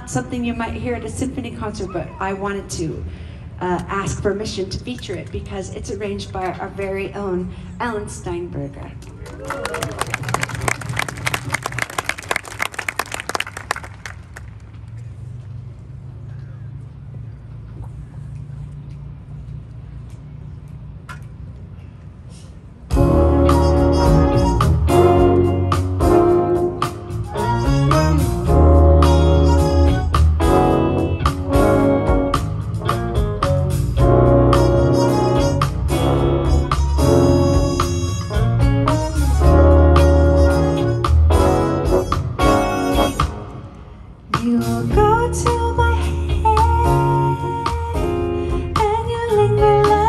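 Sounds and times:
audience applause: 9.2s - 14.7s
symphony orchestra playing jazz: 22.9s - 43.8s.

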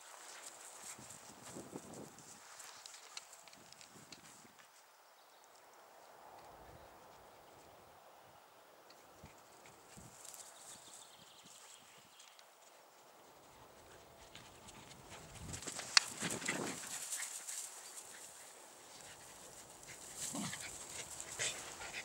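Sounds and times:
dogs rustling through dry grass: 0.0s - 4.8s, 9.4s - 22.0s.

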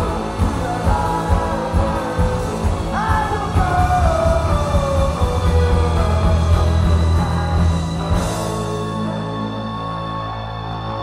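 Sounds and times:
heavy bass: 0.0s - 11.0s
live rock band playing: 0.0s - 11.0s.

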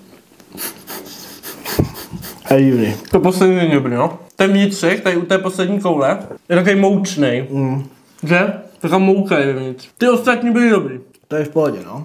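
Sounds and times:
breathing through the nose: 0.5s - 2.5s.

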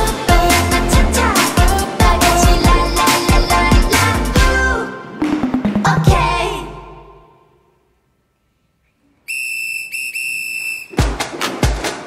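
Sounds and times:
dance-pop music: 0.0s - 5.1s, 5.8s - 7.1s
shrill whistle: 9.2s - 11.1s.

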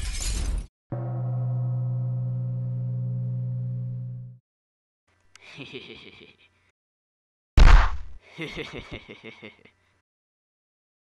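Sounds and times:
low buzzy electronic hum: 1.0s - 4.4s.

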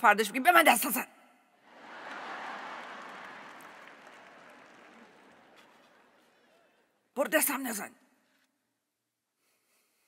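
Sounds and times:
audience laughing: 1.6s - 6.9s
audience clapping: 1.6s - 7.1s.

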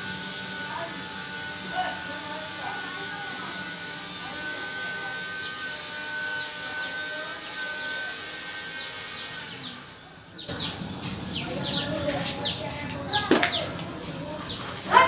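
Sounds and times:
small birds chirping: 1.7s - 15.0s.

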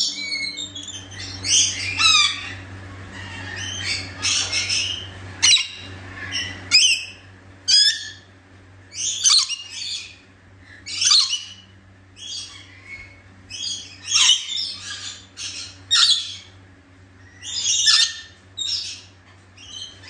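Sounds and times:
lorikeets screeching: 0.0s - 8.3s, 8.9s - 10.2s, 10.8s - 16.6s, 17.2s - 20.0s.

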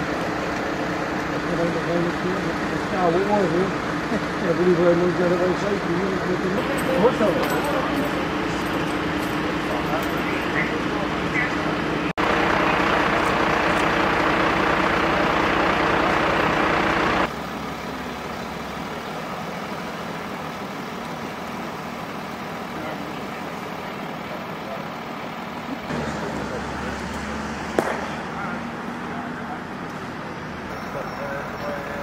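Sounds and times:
vehicle engines idling: 0.0s - 32.0s
faint voices: 1.2s - 14.6s, 17.5s - 32.0s.

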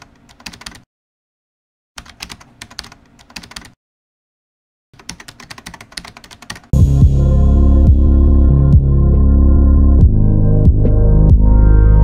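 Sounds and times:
rapid keyboard typing clicks: 0.0s - 0.8s, 2.0s - 3.8s, 5.0s - 6.7s
loud music with deep tone: 6.8s - 12.0s.

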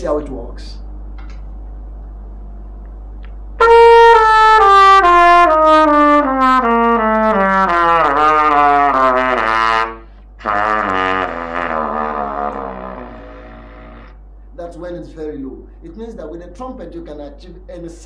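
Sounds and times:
trumpet playing low notes: 3.6s - 14.2s.

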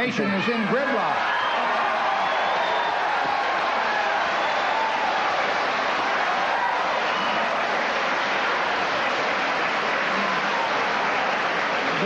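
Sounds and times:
audience applauding: 0.7s - 12.0s.

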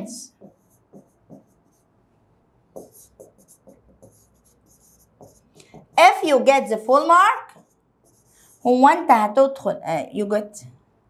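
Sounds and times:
stylus tapping and scratching on screen: 0.0s - 9.1s.

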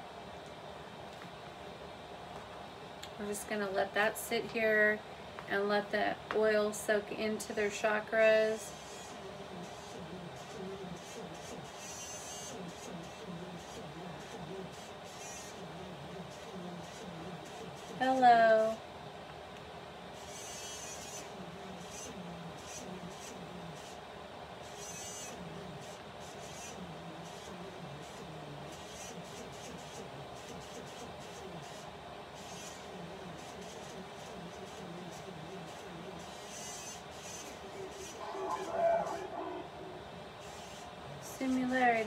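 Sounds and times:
radio static hiss: 7.6s - 18.8s, 32.5s - 42.0s
static bursts: 37.3s - 41.6s
choppy voice fragments: 37.7s - 40.3s.

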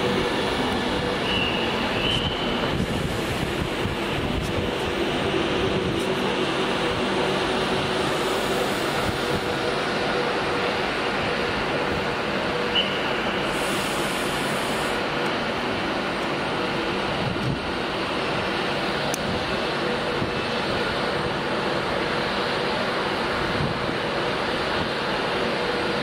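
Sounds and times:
wheels on rail rumble and hiss: 0.0s - 26.0s.

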